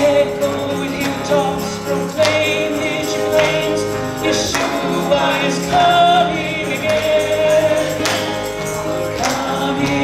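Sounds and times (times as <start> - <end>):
group singing a hymn: 0.0 - 10.0
musical accompaniment: 0.0 - 10.0
percussion: 0.0 - 10.0.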